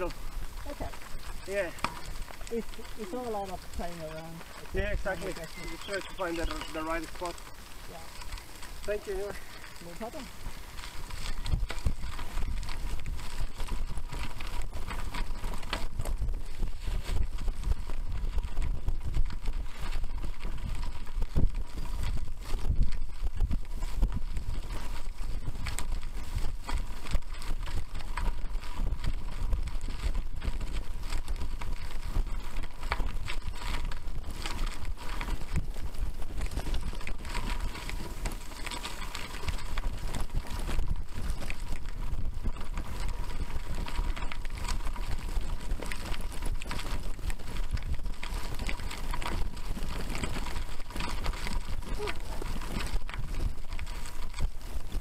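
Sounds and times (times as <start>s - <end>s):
bicycle tyres rattling on gravel: 0.0s - 55.0s
wind on microphone: 0.0s - 55.0s.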